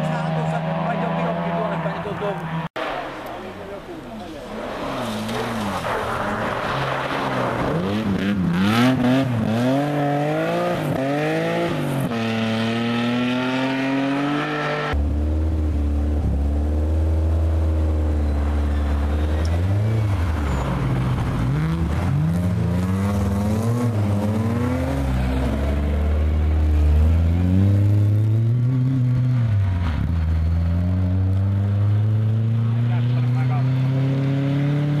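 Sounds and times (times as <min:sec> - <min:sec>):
rally car engines revving: 0:00.0 - 0:35.0.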